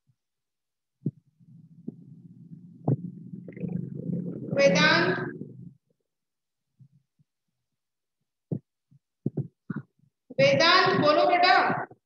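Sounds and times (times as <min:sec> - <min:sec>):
faint low blips: 0:01.0 - 0:05.9.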